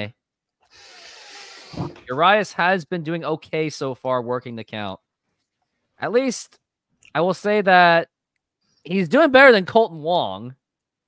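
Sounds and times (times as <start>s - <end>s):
men talking: 2.0s - 5.0s.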